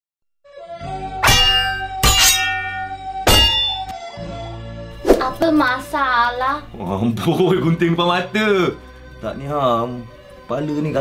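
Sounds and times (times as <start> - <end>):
bright metallic hits: 1.2 - 4.0.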